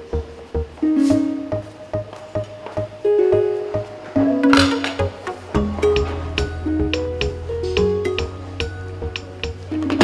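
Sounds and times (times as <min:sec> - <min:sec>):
steady beat: 0:00.1 - 0:09.9
plucked-string melody: 0:00.5 - 0:10.0.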